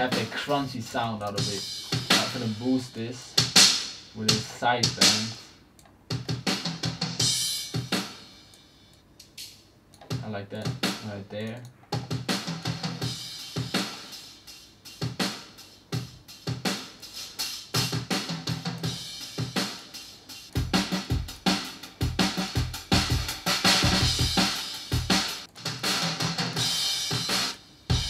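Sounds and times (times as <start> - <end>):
drum beat: 0.0 - 8.4, 10.1 - 11.3, 11.9 - 28.0.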